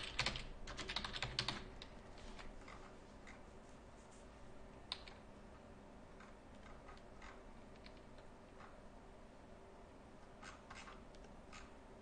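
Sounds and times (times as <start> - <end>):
computer keys clicking: 0.0 - 2.0, 4.9 - 5.2, 6.2 - 8.7.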